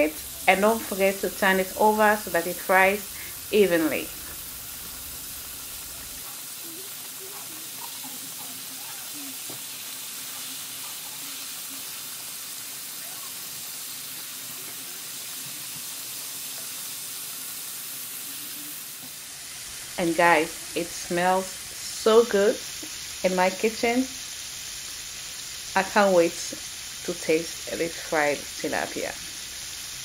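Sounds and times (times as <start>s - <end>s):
fish frying in oil: 0.0s - 30.0s.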